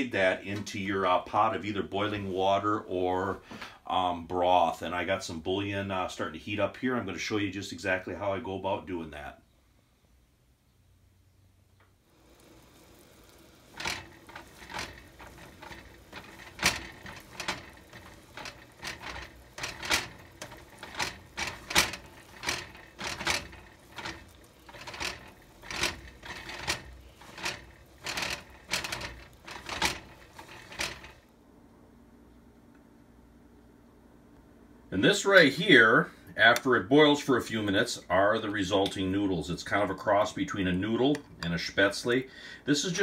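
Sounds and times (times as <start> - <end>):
dough rasping on metal grater: 12.3 - 31.2.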